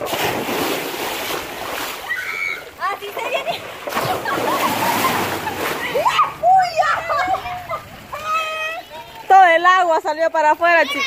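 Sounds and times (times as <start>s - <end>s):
water splashing and rushing: 0.0s - 11.0s.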